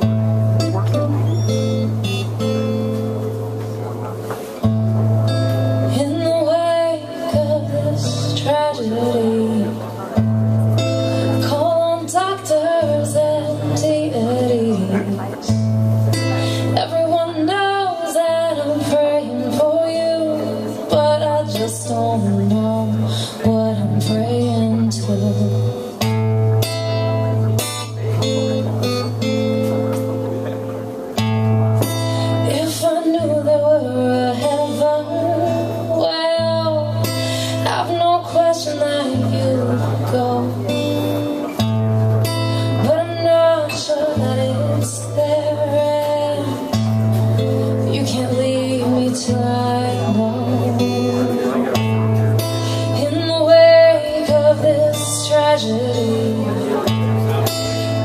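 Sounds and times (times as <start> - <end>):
strummed acoustic guitar: 0.0 - 58.0
woman singing: 5.8 - 26.0, 32.2 - 41.3, 42.4 - 51.8, 52.6 - 56.9.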